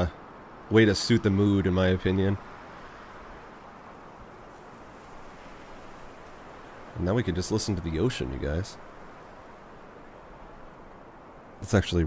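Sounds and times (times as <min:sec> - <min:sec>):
ocean waves: 0:00.0 - 0:12.0.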